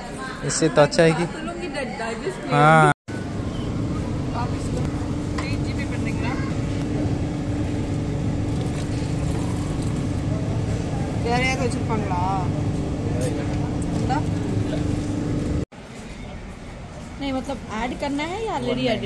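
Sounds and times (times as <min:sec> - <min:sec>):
machinery rumble and hum: 0:03.1 - 0:15.7.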